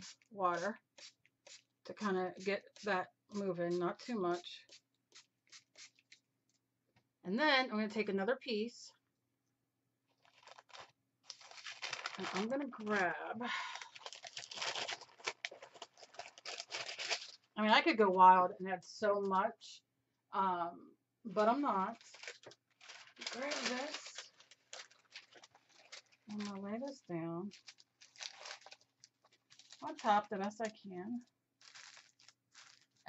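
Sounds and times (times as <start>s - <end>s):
paper rustling and crinkling: 10.2s - 13.0s, 13.8s - 17.5s, 21.9s - 30.8s, 31.6s - 33.0s.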